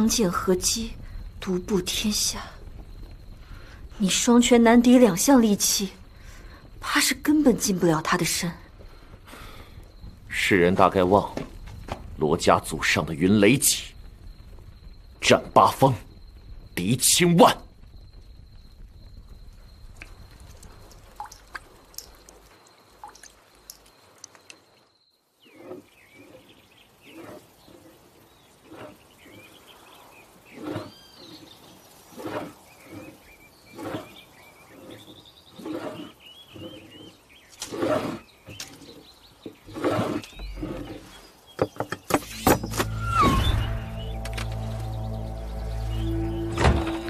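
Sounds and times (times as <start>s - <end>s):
birds chirping: 25.4s - 47.0s
louder short sound: 42.3s - 47.0s
steady high thin tone: 42.4s - 47.0s.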